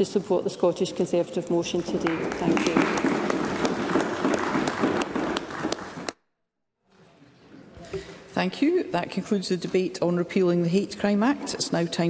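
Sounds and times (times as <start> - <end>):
people applauding: 1.9 - 6.2.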